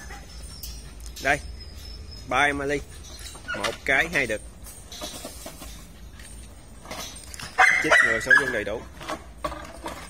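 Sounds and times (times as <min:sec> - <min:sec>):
dog barking: 0:07.6 - 0:08.5.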